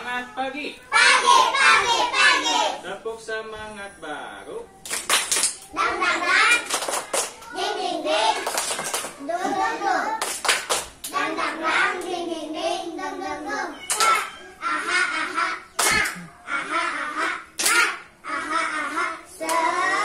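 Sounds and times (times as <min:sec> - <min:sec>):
young children's voices: 0:00.0 - 0:02.9, 0:04.6 - 0:10.4, 0:11.1 - 0:20.0
sharp hand claps: 0:04.8 - 0:05.7, 0:06.4 - 0:07.5, 0:08.3 - 0:09.2, 0:10.2 - 0:11.2, 0:13.9 - 0:14.3, 0:15.8 - 0:16.3, 0:17.6 - 0:18.0.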